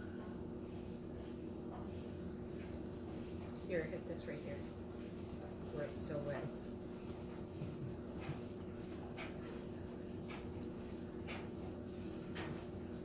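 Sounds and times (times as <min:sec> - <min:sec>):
steady low hum: 0:00.0 - 0:13.0
paintbrush strokes swishing: 0:00.4 - 0:13.0.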